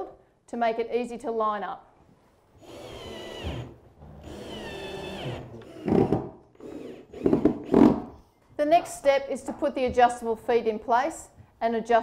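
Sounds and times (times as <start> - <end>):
cordless drill driving screws: 2.6 - 7.9.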